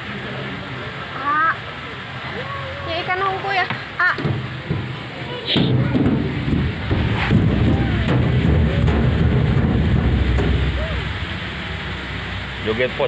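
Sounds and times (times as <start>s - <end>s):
faint voices: 0.0s - 13.0s
low rumble: 4.4s - 13.0s.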